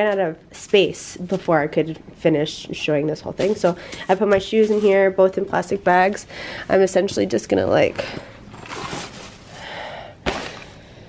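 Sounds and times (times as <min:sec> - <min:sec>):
plastic bags and fabric rustling: 0:03.2 - 0:06.2, 0:08.4 - 0:10.8.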